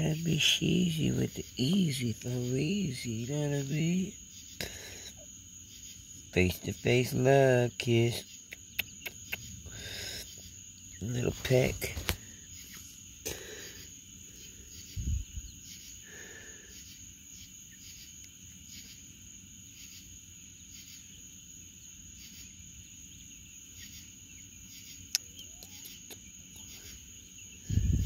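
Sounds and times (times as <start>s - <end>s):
night insects trilling: 0.0s - 28.0s.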